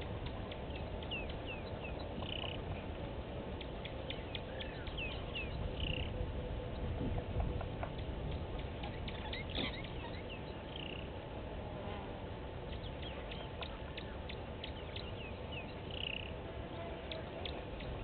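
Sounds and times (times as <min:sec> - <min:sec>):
birds chirping: 0:00.0 - 0:11.3, 0:12.4 - 0:18.0
steady low rumble: 0:00.0 - 0:18.0.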